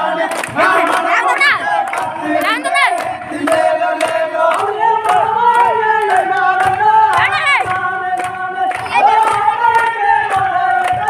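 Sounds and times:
group singing and shouting: 0.0s - 11.0s
sharp hand claps: 0.2s - 11.0s.

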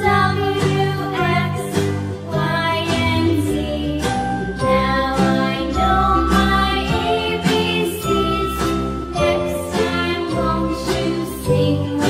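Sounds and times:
children's song with sung melody: 0.0s - 12.0s.

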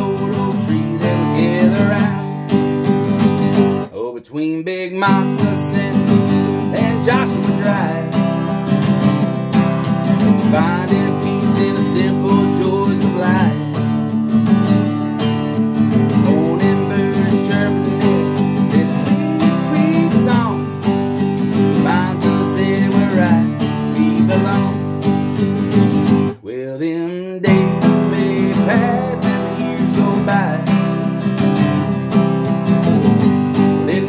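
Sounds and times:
acoustic guitar strumming chords: 0.0s - 34.0s.

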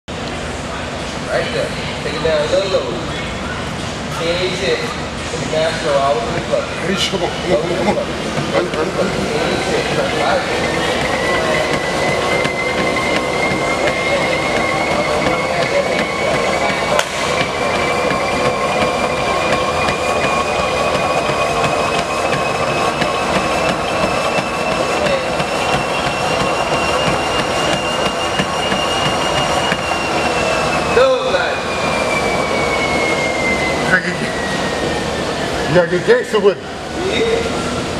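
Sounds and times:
treadmill whine: 0.1s - 37.9s.

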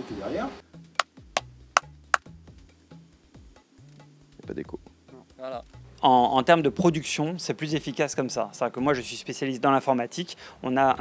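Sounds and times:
soft background music: 0.0s - 11.0s
dry hand clap: 1.0s - 2.3s.

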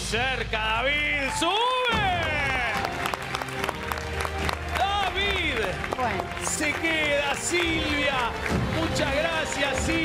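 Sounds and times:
game show background music: 0.0s - 10.0s
studio audience applauding: 1.1s - 10.0s.

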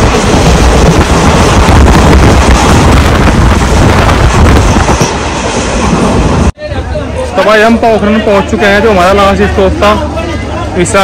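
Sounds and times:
wind on microphone: 0.0s - 6.5s
train wheel and rail noise: 0.0s - 11.0s.

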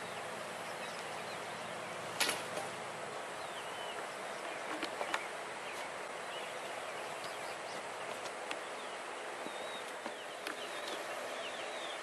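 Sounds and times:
outdoor background noise: 0.0s - 12.0s
faint bird chirps: 8.6s - 12.0s.

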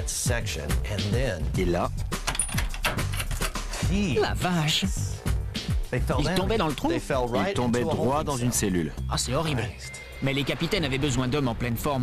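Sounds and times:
low background music: 0.0s - 12.0s
wooden trapdoor clattering: 2.2s - 3.7s.

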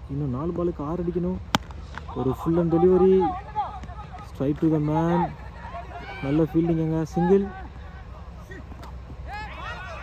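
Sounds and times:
distant players shouting: 1.1s - 10.0s.

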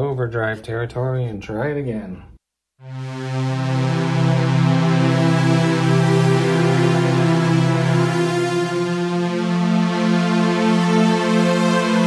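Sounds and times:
overdriven synthesizer chord: 2.8s - 12.0s.

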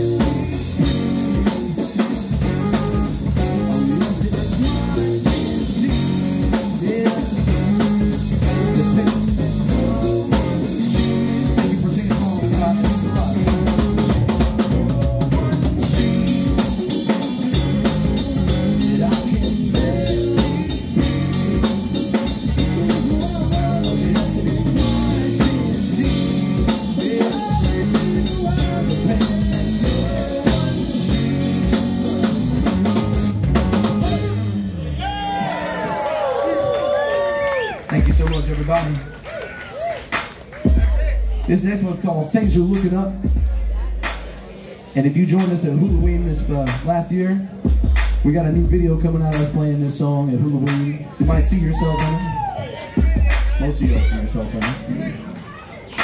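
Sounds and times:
drum kit beat: 0.0s - 39.2s, 39.8s - 55.1s
electric guitar: 0.0s - 39.3s
bass: 0.0s - 56.0s
keyboard: 0.0s - 56.0s.

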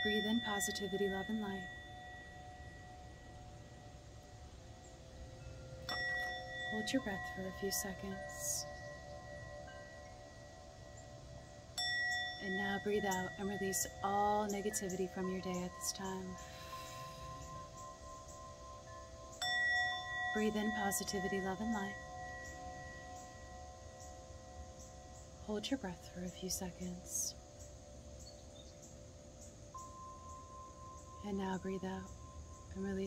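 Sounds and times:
singing bowl ringing: 0.0s - 33.0s.

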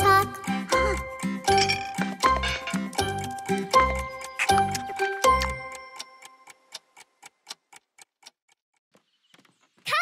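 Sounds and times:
children's song: 0.0s - 1.2s
clock ticking: 0.0s - 8.8s.

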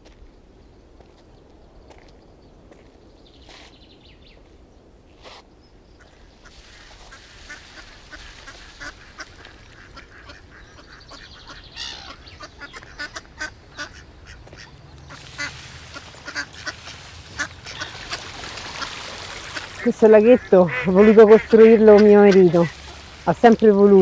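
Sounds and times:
steady outdoor hiss: 0.0s - 24.0s
ducks quacking: 6.0s - 24.0s.

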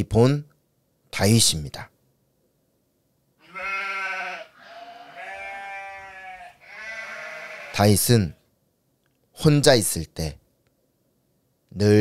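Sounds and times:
sheep bleating: 3.4s - 7.9s.

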